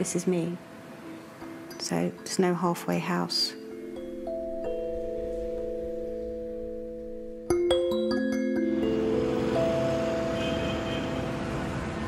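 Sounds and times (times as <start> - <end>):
street traffic driving past: 0.0 - 2.5, 8.5 - 12.0.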